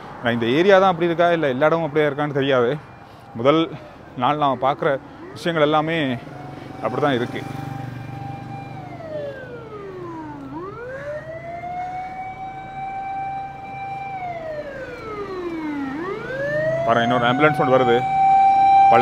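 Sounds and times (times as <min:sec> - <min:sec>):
ambulance siren wailing: 0:00.5 - 0:19.0.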